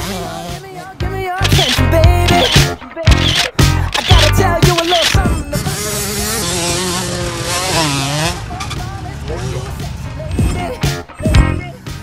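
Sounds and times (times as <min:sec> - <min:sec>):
motocross bike engine revving: 0:01.4 - 0:10.1.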